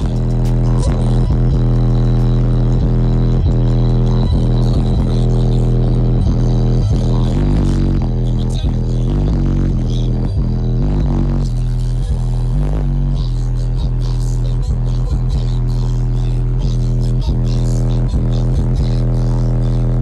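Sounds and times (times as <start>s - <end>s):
bass-heavy music through car subwoofers: 0.0s - 20.0s.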